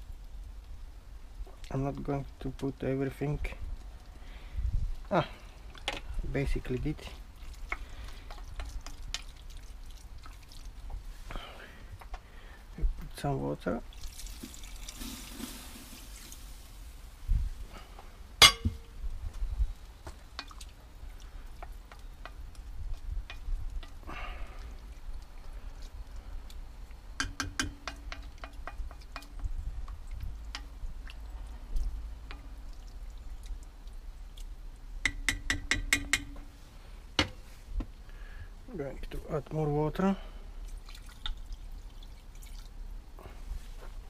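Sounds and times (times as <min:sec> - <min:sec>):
water pouring into a pot: 0:13.8 - 0:16.9, 0:40.6 - 0:42.8
clinks and knocks: 0:18.4 - 0:18.8.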